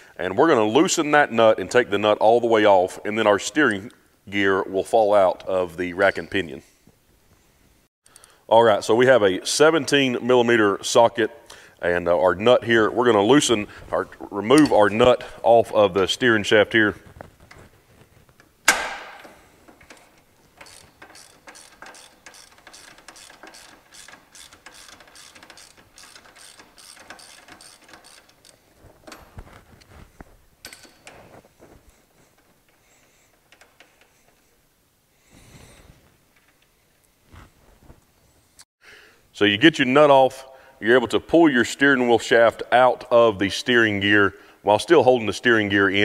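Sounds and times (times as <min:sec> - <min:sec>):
ratchet wrench clicking: 0:20.6 - 0:28.6.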